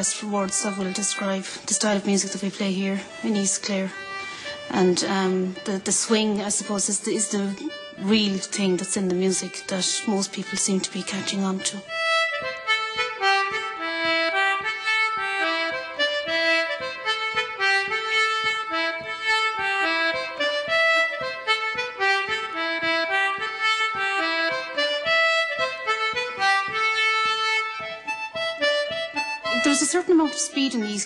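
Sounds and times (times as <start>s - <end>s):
dance tune on free-reed instrument: 0.0s - 31.0s.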